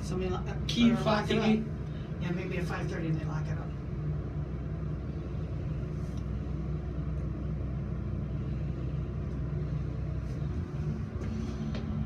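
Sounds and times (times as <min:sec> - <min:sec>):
elevator hum and rumble: 0:00.0 - 0:12.0.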